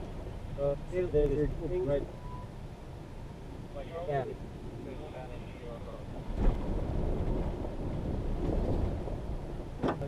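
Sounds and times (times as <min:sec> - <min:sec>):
pickup truck rumbling on dirt trail: 0:04.4 - 0:10.0.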